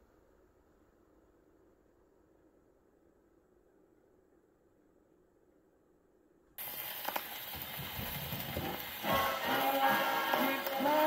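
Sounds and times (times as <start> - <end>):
record surface hiss and crackles: 0.0 - 11.0.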